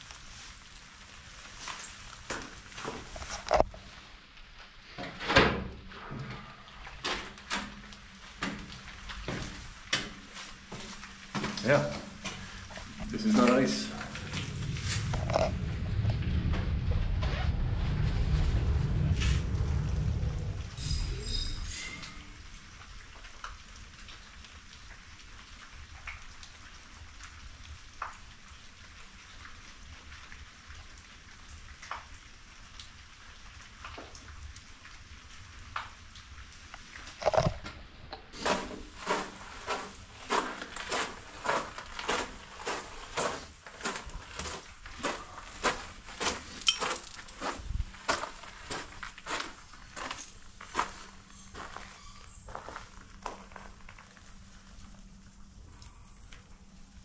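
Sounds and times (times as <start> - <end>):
footsteps on concrete: 38.4 - 54.3.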